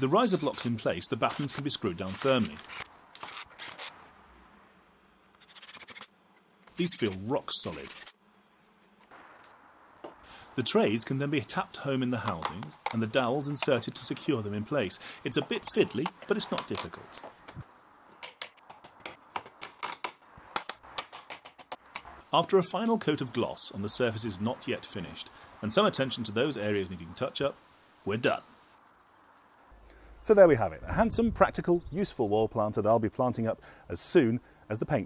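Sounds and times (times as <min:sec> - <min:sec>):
faint hiss: 0:09.1 - 0:17.7, 0:22.2 - 0:31.4
wood-on-wood taps and clicks: 0:18.2 - 0:22.1.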